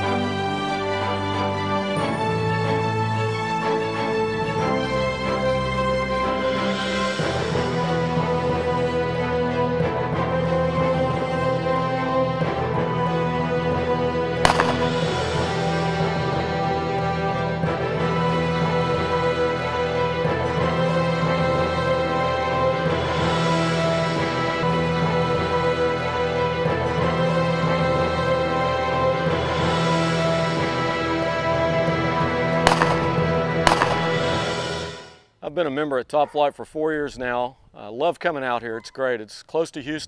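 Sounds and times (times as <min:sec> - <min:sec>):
background music: 0:00.0 - 0:35.4
faint crack: 0:14.5 - 0:15.2
shotgun shot: 0:14.5 - 0:15.6, 0:32.7 - 0:34.6.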